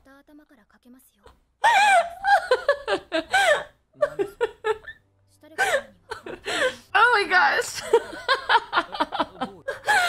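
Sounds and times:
woman laughing hard: 1.6 - 5.0, 7.8 - 10.0.

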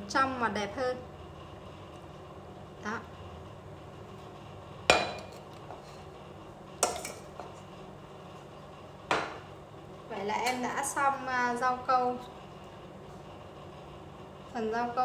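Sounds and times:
metal kitchenware clinking: 6.8 - 7.2.

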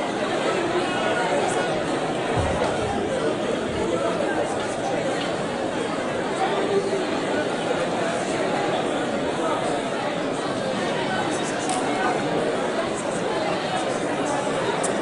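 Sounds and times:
babble of overlapping voices: 0.0 - 15.0.

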